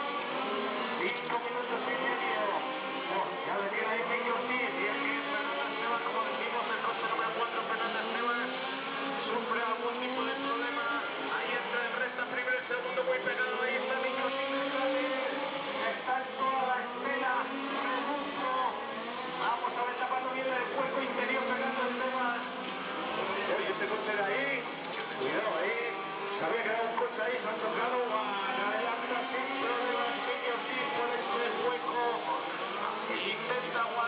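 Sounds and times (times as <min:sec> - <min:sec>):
radio-controlled car engines revving: 0:00.0 - 0:34.0.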